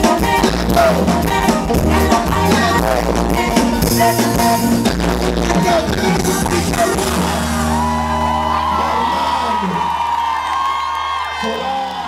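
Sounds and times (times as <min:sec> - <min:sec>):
live band chord: 0:00.0 - 0:09.7
sustained bass note: 0:00.6 - 0:09.2
crowd whooping and yelling: 0:06.6 - 0:12.0.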